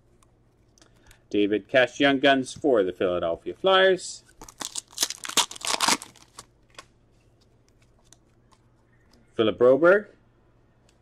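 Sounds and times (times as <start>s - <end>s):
trading cards rustling: 4.3s - 8.7s.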